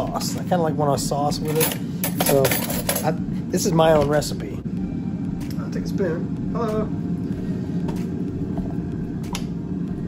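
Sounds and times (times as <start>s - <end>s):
air fryer whirring: 0.0s - 10.0s.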